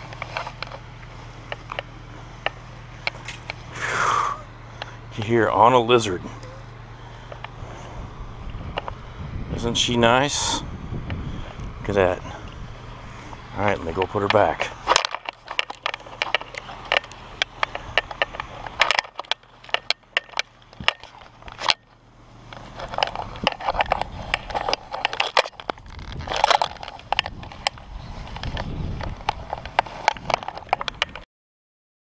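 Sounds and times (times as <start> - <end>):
camera handling clicks and knocks: 14.9 - 21.8.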